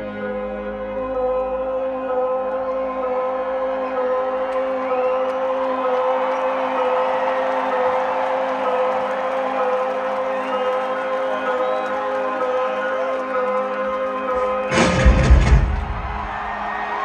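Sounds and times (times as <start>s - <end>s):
crowd cheering and whooping: 3.8s - 17.0s.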